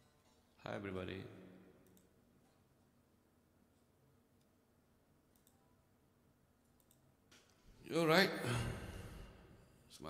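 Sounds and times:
man talking: 0.6s - 1.4s, 7.8s - 9.1s.

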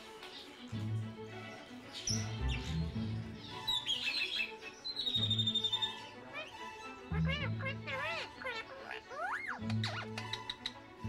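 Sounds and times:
background music: 0.0s - 11.0s
small birds chirping: 0.1s - 11.0s.

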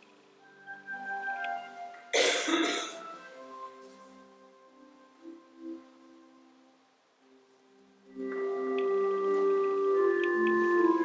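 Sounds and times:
soft instrumental music: 0.0s - 11.0s
person coughing: 2.2s - 3.0s.

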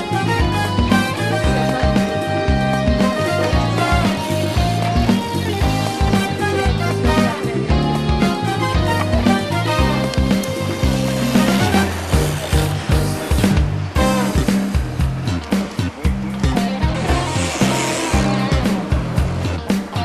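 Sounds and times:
music with steady beat and bass: 0.0s - 20.0s.

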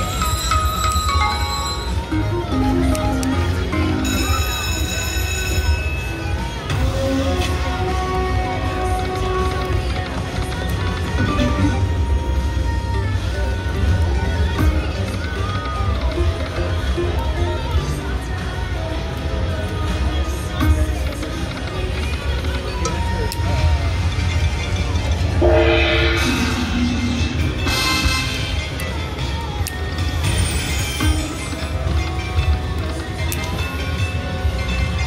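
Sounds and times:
slot machine tones and jingle: 0.0s - 6.8s, 11.2s - 11.9s, 24.3s - 29.2s
low casino hum: 0.0s - 35.0s.

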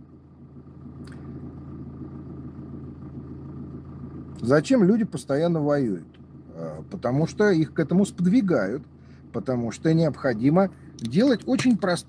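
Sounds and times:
low hum and rumble: 0.0s - 12.0s.

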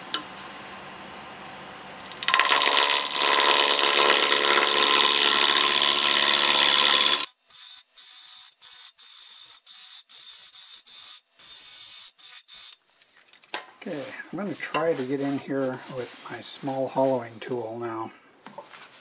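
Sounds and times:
gouge cutting wood on lathe: 2.1s - 7.3s.

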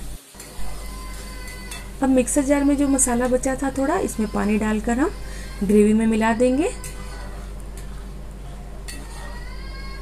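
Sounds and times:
gravy sizzling in oil: 0.0s - 5.2s
faint background music: 0.2s - 10.0s.

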